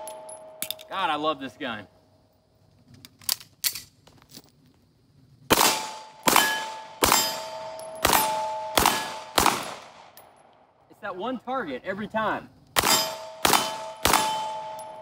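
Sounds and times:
steel plate target clanging: 0:00.0 - 0:01.2, 0:06.4 - 0:09.2, 0:12.8 - 0:15.0
pistol shots: 0:05.5 - 0:10.2, 0:12.8 - 0:15.0.

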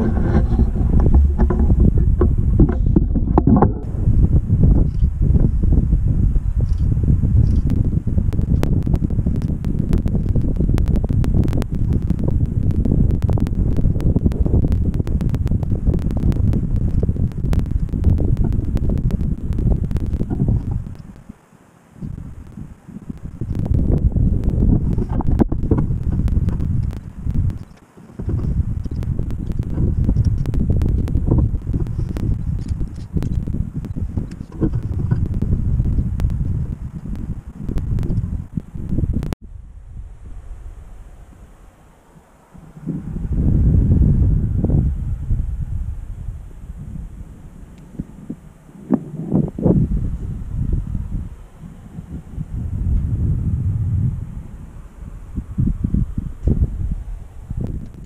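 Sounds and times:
crackling clicks: 0:00.0 - 0:03.9, 0:04.7 - 0:05.2, 0:06.6 - 0:39.4, 0:57.4 - 0:58.0
wind buffeting microphone: 0:00.0 - 0:58.0.

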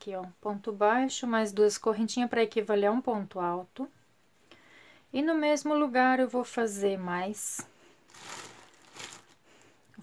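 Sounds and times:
soft rustling of crochet and twine: 0:07.4 - 0:10.0.

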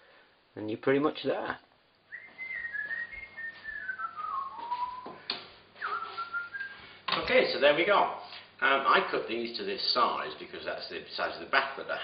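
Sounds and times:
person whistling a tune: 0:02.1 - 0:05.2, 0:05.8 - 0:06.9.

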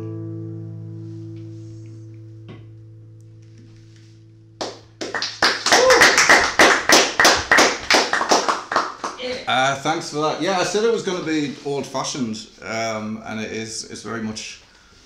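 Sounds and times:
people clapping: 0:04.6 - 0:09.5.

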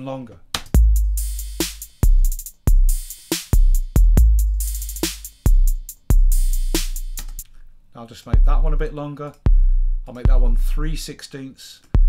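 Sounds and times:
deep drum machine kick: 0:00.8 - 0:07.4, 0:08.4 - 0:08.8, 0:09.5 - 0:10.8
hi-hat ticks: 0:00.9 - 0:07.5
snare hit: 0:06.8 - 0:07.4.

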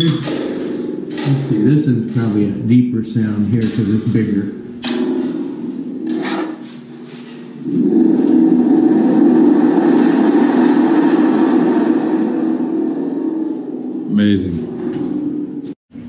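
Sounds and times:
spring drum thunder-like rumble: 0:07.6 - 0:15.6.

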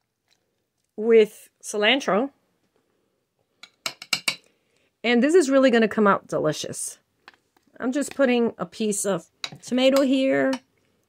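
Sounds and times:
metal spoon clinking on glass plate: 0:03.8 - 0:04.4.

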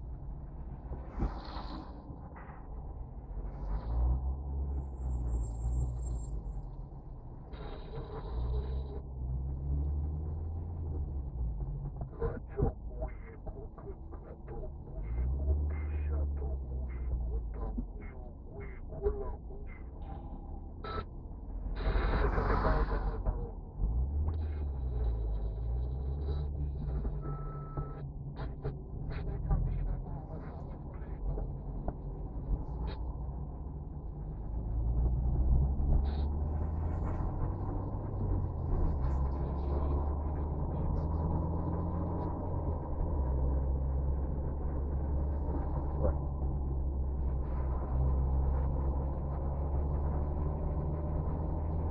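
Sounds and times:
car engine and road rumble: 0:00.0 - 0:51.9.

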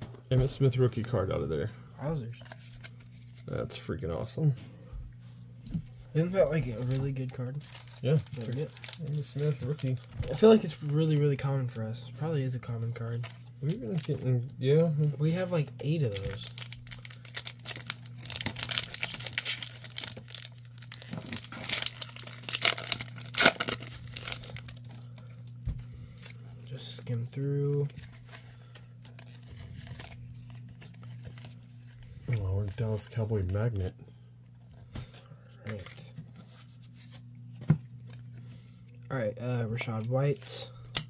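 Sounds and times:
steady low hum: 0:00.0 - 0:41.0
foil wrapper crinkling and tearing: 0:06.2 - 0:11.8, 0:15.2 - 0:32.9.

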